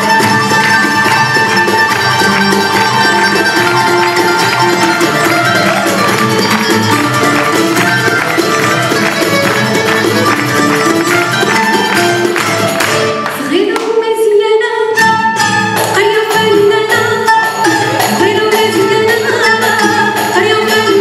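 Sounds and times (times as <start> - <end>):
string ensemble melody: 0.0 - 13.6.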